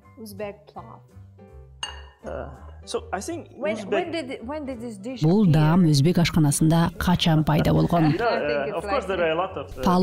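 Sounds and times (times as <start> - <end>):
dishes clattering: 1.8 - 2.2
dishware clinking against metal pot: 1.8 - 2.2.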